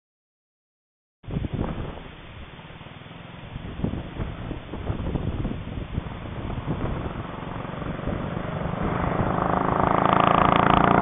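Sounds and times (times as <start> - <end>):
motorcycle engine approaching: 2.6 - 11.0.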